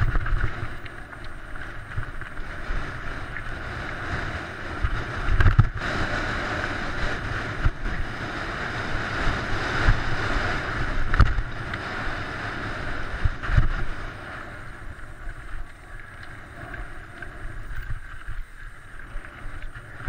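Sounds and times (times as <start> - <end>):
wind rushing over microphone: 0.0 - 20.0.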